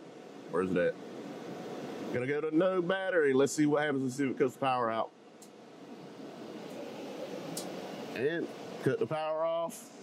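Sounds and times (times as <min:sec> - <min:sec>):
steady rushing air noise: 0:00.0 - 0:10.0.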